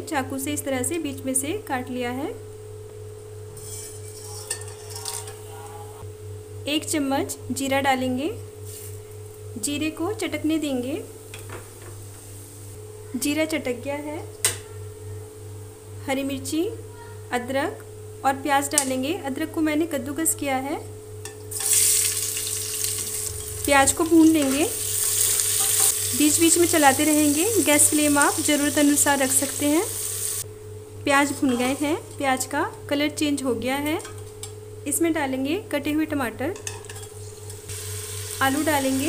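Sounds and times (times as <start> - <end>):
steel bowl clink: 3.6 - 5.4
faint sizzle of oil: 8.6 - 9.4, 21.2 - 30.5, 36.6 - 39.0.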